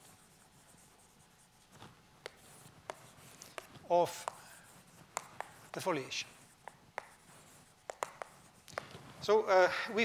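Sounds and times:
chalk tapping on blackboard: 0:00.0 - 0:09.3
chalk scratching on blackboard: 0:00.0 - 0:09.4.

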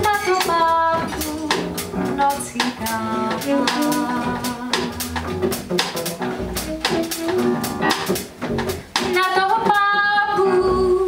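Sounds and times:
jazz band playing: 0:00.0 - 0:11.0.

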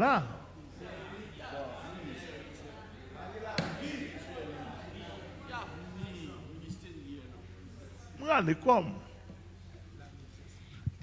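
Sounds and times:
faint low voices: 0:00.0 - 0:11.0.

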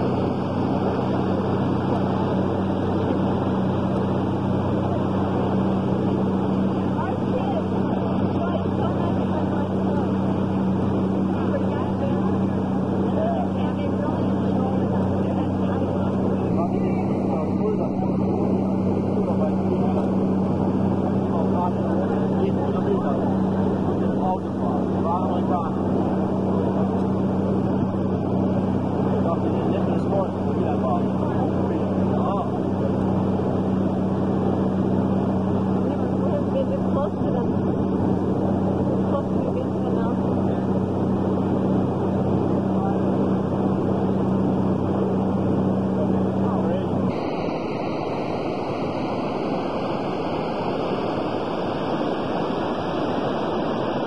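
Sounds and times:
boat engine droning: 0:00.0 - 0:54.0.

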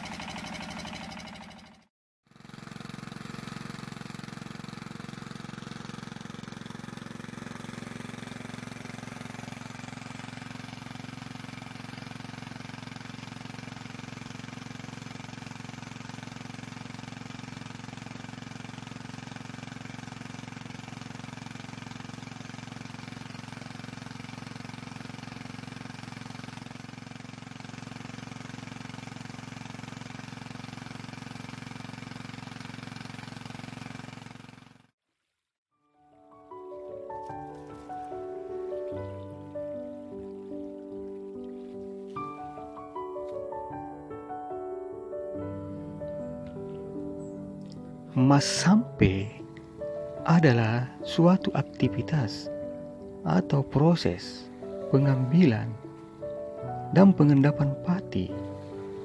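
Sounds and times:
petrol water pump running: 0:00.0 - 0:34.9, 0:36.6 - 0:44.2, 0:45.4 - 0:59.0
water pumping through pipe: 0:02.5 - 0:34.8.

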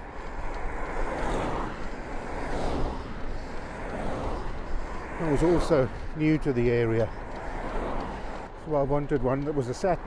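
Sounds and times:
bicycle tyres on wet tarmac: 0:00.0 - 0:10.0
passing traffic: 0:00.0 - 0:10.0.

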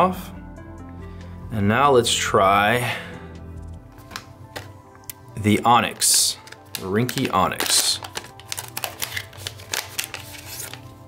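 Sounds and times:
soft background music: 0:00.0 - 0:11.0
paper rustling and crinkling: 0:03.9 - 0:04.8, 0:05.8 - 0:11.0.

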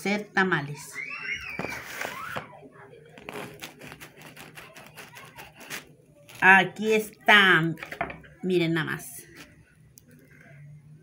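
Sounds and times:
knife cutting crackling crust: 0:03.1 - 0:07.2, 0:09.2 - 0:09.6.

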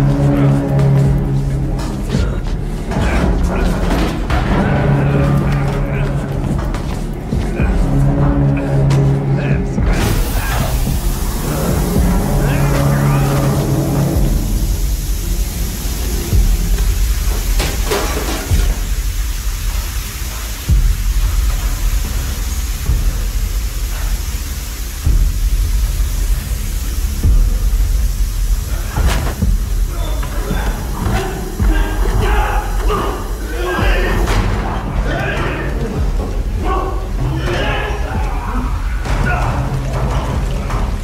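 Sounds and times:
deep steady rumble: 0:00.0 - 0:41.0
sustained music tones: 0:00.0 - 0:41.0.

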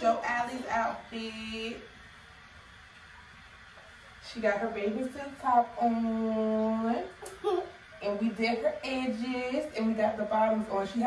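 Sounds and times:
faint room tone hiss: 0:00.0 - 0:11.0.

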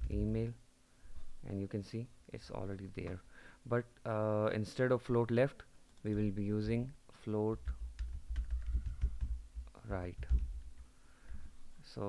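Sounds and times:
keyboard typing: 0:07.6 - 0:10.6.

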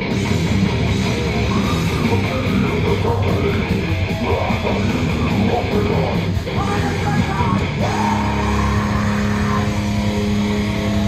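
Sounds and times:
distorted guitar note: 0:00.0 - 0:11.0
heavy metal band playing: 0:00.0 - 0:11.0.

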